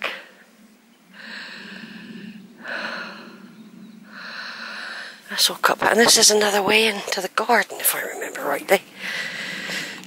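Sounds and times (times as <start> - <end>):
breaths close to microphone: 0.0 - 5.3, 8.9 - 10.0
faint low hum: 0.0 - 10.0.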